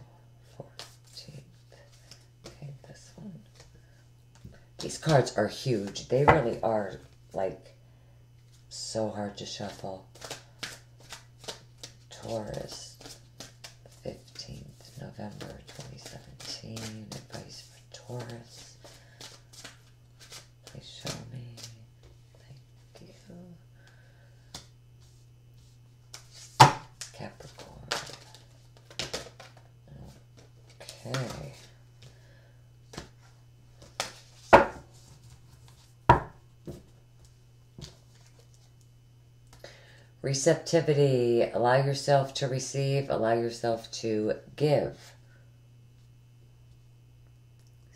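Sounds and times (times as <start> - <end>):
steady low hum: 0.0 - 47.9
cards being shuffled by hand: 0.7 - 3.7, 8.4 - 23.2, 24.5 - 32.2, 32.8 - 35.9.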